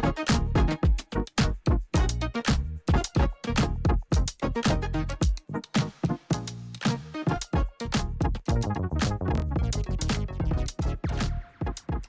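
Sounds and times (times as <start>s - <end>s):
electronic music with synthesizer: 0.0s - 12.0s
quick steady drum beat: 2.9s - 4.4s, 9.6s - 12.0s.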